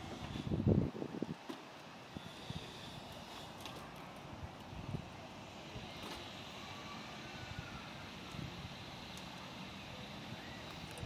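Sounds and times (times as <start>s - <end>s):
distant engines humming: 0.0s - 11.0s.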